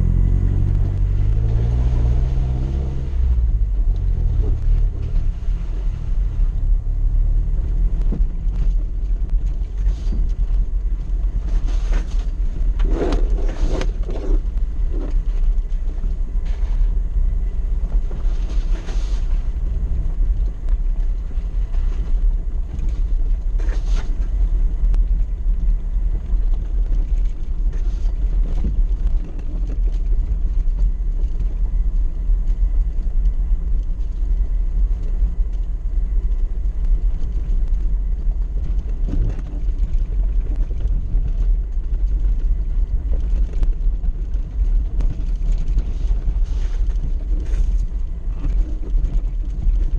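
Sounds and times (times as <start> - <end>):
vehicle engine rumble: 0.0 - 49.9
knocks and rattles over bumps: 6.3 - 49.9.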